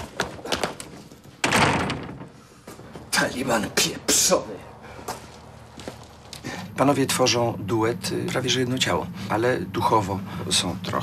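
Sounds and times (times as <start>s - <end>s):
metal gate rattling: 1.2s - 3.6s
gate slamming: 1.4s - 3.5s.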